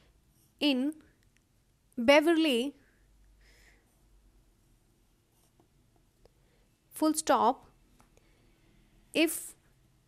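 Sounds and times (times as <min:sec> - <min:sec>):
pencil writing on paper: 0:03.9 - 0:06.0.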